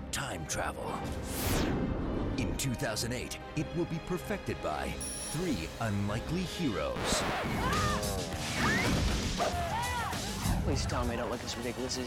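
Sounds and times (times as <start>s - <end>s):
trailer background music: 0.0s - 12.0s.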